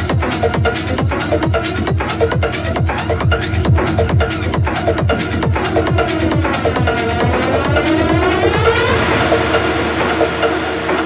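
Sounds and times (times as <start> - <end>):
hissing noise sweep: 2.6 - 11.0
sustained synth tones: 3.0 - 11.0.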